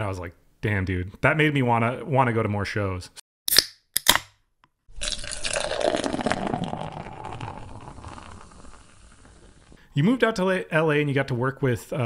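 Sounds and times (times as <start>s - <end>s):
beer fizzing into a glass: 5.0s - 9.8s.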